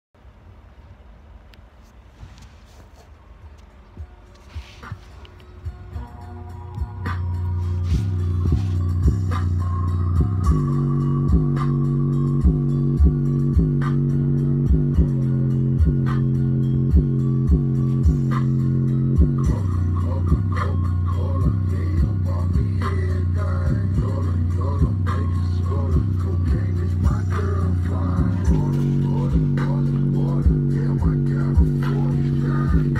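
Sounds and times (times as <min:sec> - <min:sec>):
bass-heavy music from speaker: 0:03.5 - 0:32.9.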